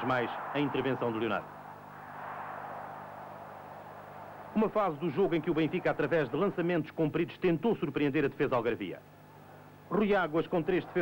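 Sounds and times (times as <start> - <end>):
faint background noise with hum: 0.0 - 11.0.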